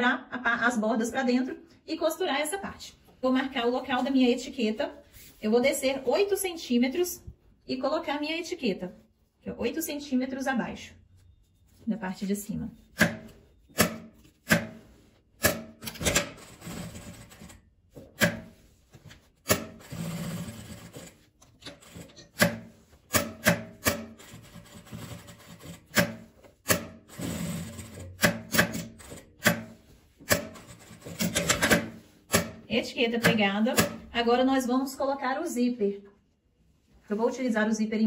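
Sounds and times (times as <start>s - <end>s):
fabric rubbing and sliding: 3.8s - 6.3s
sewing machine stitching: 15.8s - 17.6s, 19.5s - 22.4s, 27.1s - 29.3s.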